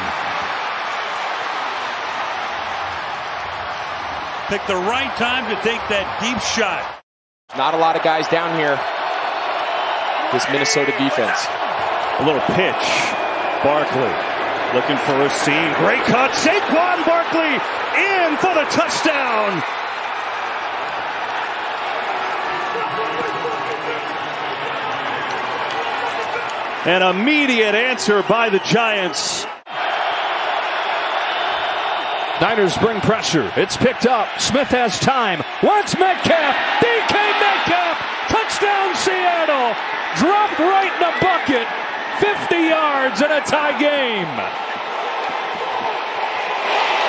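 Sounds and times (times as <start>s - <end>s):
stadium crowd cheering: 0.0s - 47.0s.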